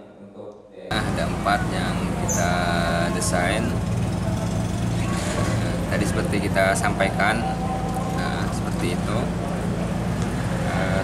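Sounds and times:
vehicle engine droning: 0:00.9 - 0:11.0.

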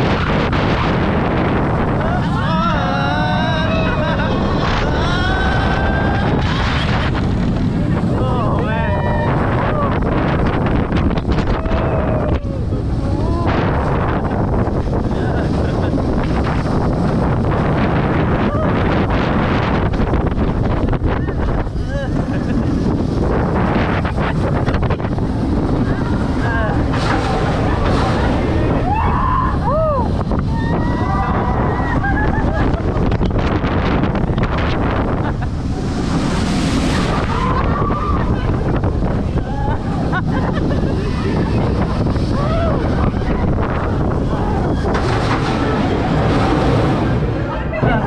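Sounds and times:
wind rushing over microphone: 0:00.0 - 0:48.0
riders' raised voices: 0:36.9 - 0:48.0.

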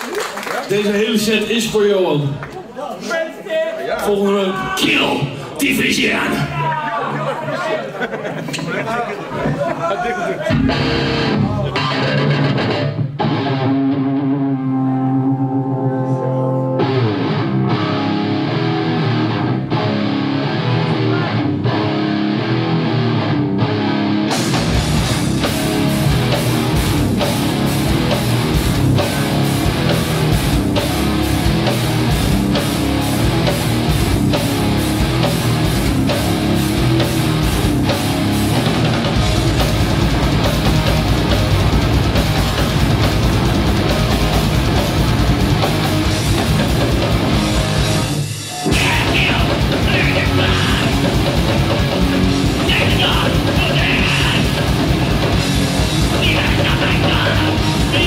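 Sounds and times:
drums: 0:10.4 - 0:14.5, 0:17.0 - 0:58.0
electric guitar riff: 0:10.5 - 0:58.0
thrash metal band playing live: 0:10.5 - 0:58.0.

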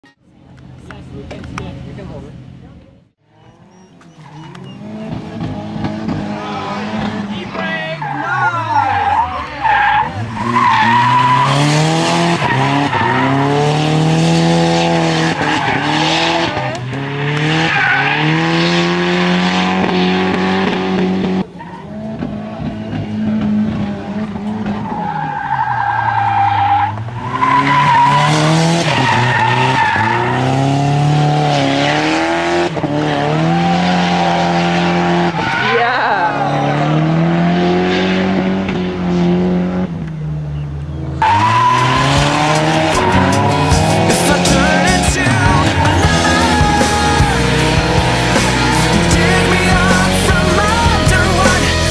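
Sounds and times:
car engine revving: 0:00.3 - 0:51.9
tyres squealing: 0:03.3 - 0:05.4, 0:06.2 - 0:14.0, 0:40.5 - 0:51.9.

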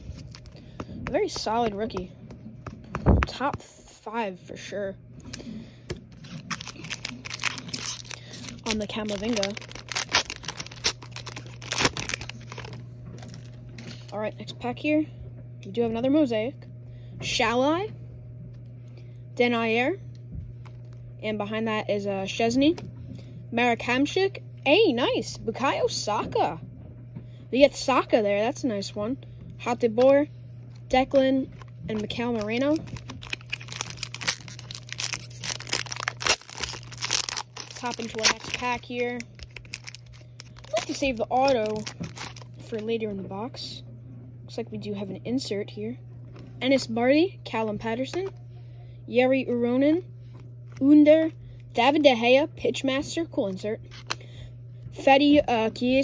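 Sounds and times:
foil wrapper crinkling: 0:00.0 - 0:00.6, 0:06.1 - 0:14.1, 0:31.5 - 0:42.8
steady low hum: 0:00.0 - 0:56.0.

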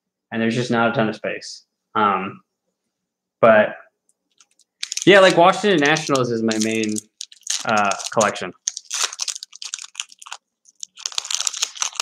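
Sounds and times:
foil wrapper crinkling: 0:04.4 - 0:12.0.

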